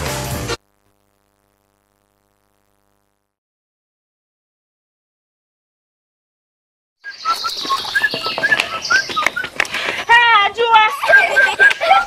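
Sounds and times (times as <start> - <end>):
birds chirping: 7.0 - 12.0.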